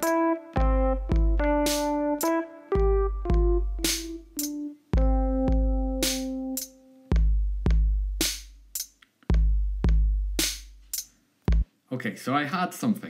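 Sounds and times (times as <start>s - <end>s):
electric piano note: 0.0s - 6.9s
deep kick drum: 0.6s - 1.7s, 2.8s - 4.2s, 5.0s - 6.2s, 7.1s - 8.4s, 9.3s - 10.6s
snare drum hit: 3.8s - 4.5s, 6.0s - 6.4s, 10.4s - 10.7s.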